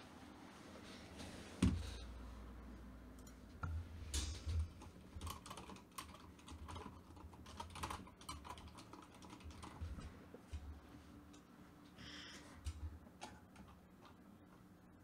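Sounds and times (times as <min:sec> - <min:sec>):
computer keyboard typing: 0:04.6 - 0:10.1.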